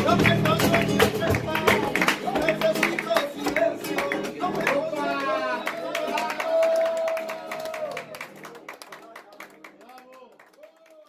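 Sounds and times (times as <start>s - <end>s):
sharp hand claps: 0.0s - 11.0s.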